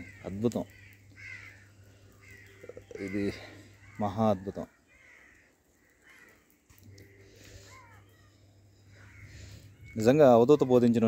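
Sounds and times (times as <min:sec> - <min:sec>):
faint bird calls: 0:00.0 - 0:11.0
low steady hum: 0:06.7 - 0:10.5.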